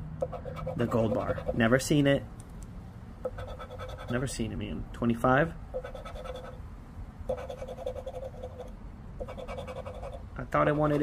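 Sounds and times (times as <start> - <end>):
coin scraping scratch ticket: 5.8 - 6.6, 7.3 - 11.0.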